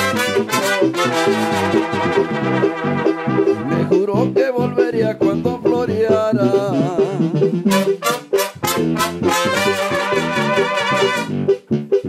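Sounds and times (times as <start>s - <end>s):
brass band playing: 0.0s - 4.3s, 7.4s - 11.6s.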